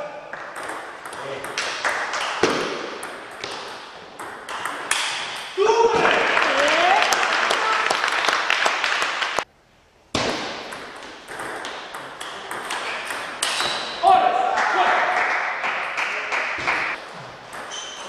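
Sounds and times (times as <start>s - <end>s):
table tennis balls clicking: 10.7s - 13.8s.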